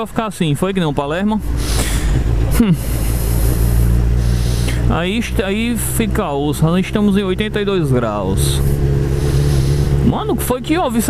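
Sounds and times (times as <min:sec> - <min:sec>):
motorcycle engine running: 0:01.3 - 0:11.0.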